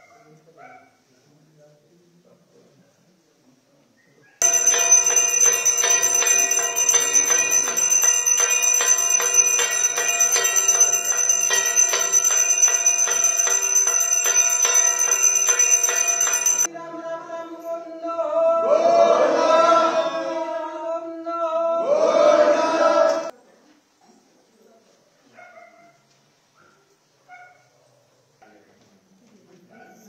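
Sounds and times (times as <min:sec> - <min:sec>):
brass hand bell ringing: 0:04.4 - 0:16.7.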